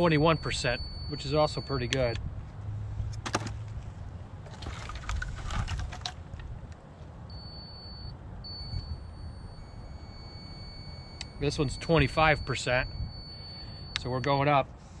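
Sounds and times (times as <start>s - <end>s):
firewood clattering: 3.2s - 3.8s, 4.4s - 6.5s.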